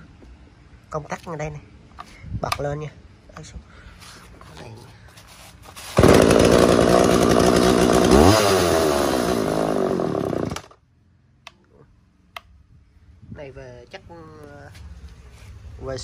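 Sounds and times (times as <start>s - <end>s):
chainsaw engine revving: 6.0s - 10.8s.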